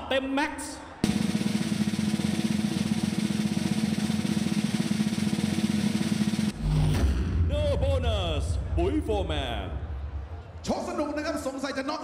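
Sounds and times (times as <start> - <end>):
snare drum roll: 1.0 - 7.3.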